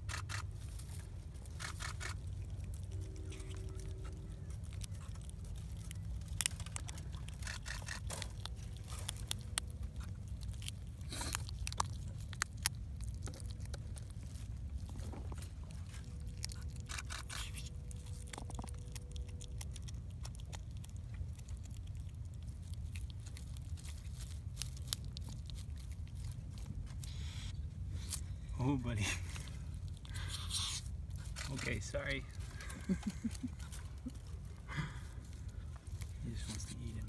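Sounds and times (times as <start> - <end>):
animal chewing with crunching clicks: 0.0 - 37.0
steady low rumble: 0.0 - 37.0.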